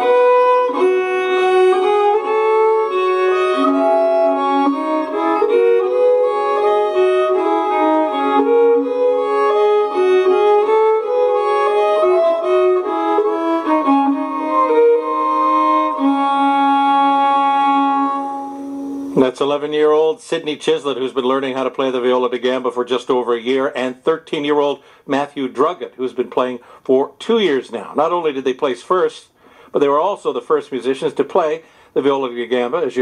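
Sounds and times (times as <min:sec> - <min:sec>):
two viols playing a duet: 0:00.0 - 0:19.2.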